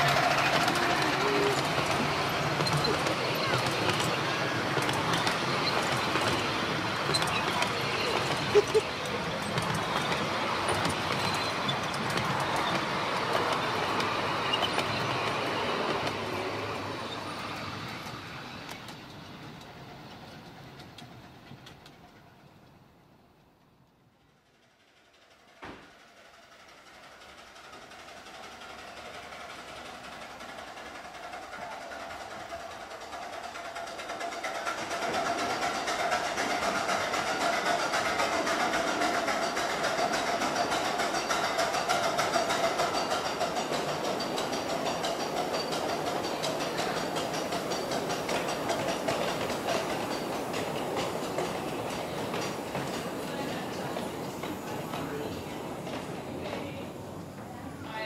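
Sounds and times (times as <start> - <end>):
wheels clattering over rails: 0.0 - 22.8, 24.9 - 58.0
miniature steam train: 0.0 - 58.0.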